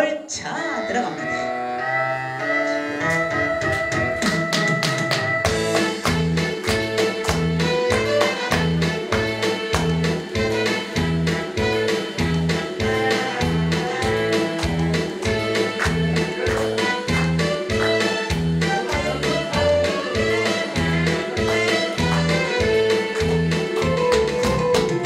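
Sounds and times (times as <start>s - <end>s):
bass and drum beat: 3.1s - 25.0s.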